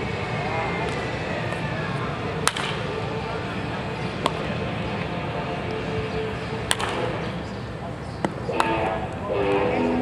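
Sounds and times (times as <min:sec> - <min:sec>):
wooden bat striking ball: 0:02.4 - 0:02.8, 0:06.7 - 0:07.1.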